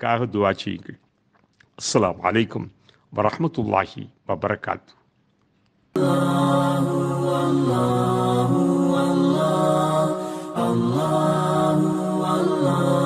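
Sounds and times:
chanted wordless vocals: 6.0s - 13.0s.

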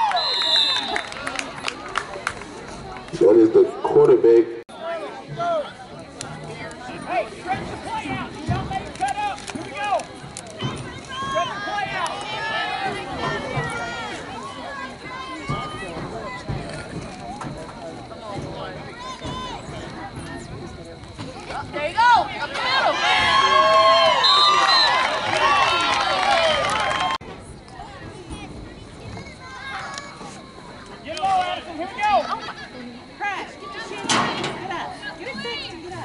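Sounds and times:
overlapping voices chattering: 0.0s - 36.0s
people shouting and calling: 7.0s - 16.5s, 21.4s - 27.2s.

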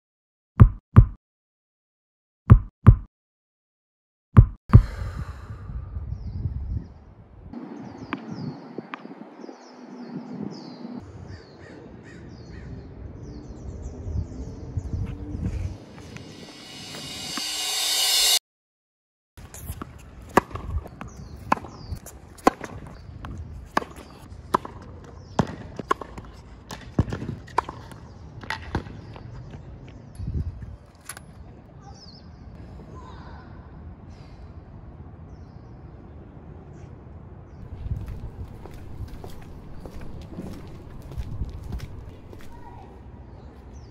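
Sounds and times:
loud rising swell: 15.7s - 18.4s
tennis ball hits and bounces: 19.5s - 29.2s
birds calling: 37.7s - 42.9s.

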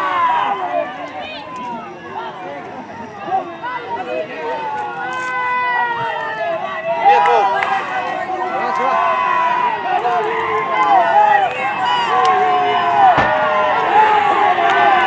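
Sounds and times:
people calling and shouting: 0.0s - 15.0s.

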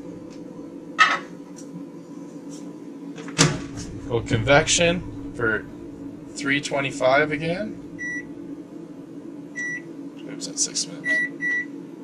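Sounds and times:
faint steady hum: 0.0s - 12.0s
oven door shutting: 3.2s - 8.6s.

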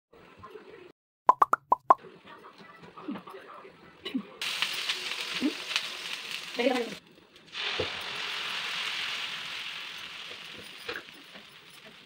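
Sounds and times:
water sizzling on hot griddle: 4.4s - 12.0s.

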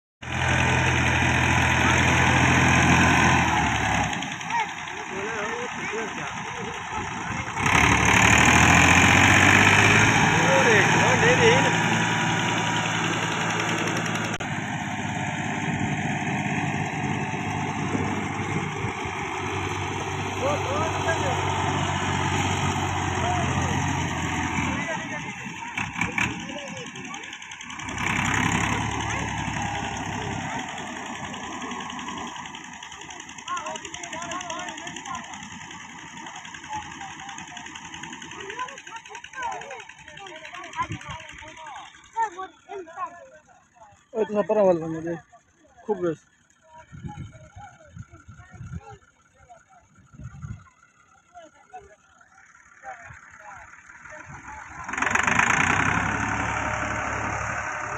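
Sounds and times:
tractor diesel engine under load: 0.2s - 57.9s.

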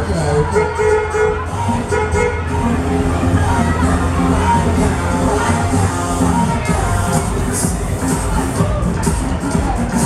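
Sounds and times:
fairground music: 0.0s - 10.0s.

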